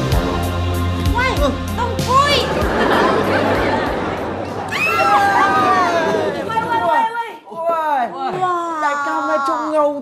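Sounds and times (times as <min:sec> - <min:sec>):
people talking and exclaiming: 0:01.0 - 0:10.0.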